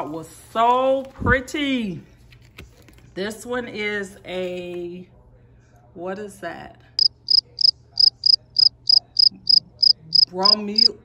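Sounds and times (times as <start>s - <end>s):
cricket chirping: 7.0s - 10.9s.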